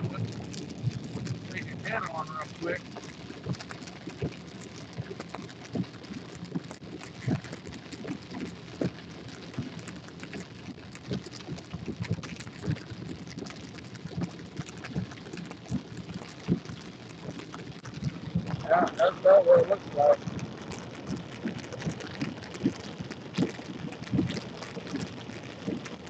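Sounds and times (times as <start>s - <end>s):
rain on car windshield and roof: 0.0s - 26.0s.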